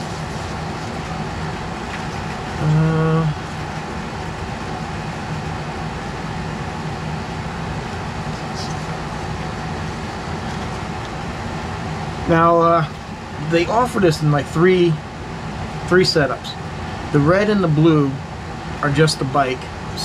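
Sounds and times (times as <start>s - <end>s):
steady background hum: 0.0s - 20.0s
man humming: 2.6s - 3.5s.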